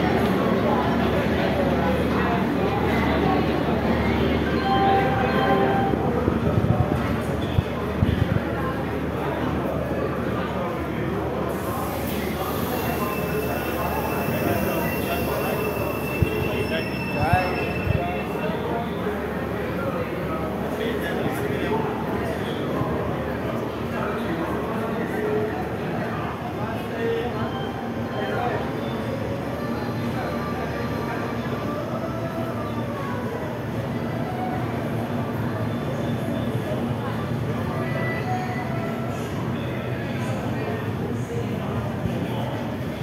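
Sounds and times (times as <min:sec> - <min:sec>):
train coaches rolling: 0:11.5 - 0:19.6.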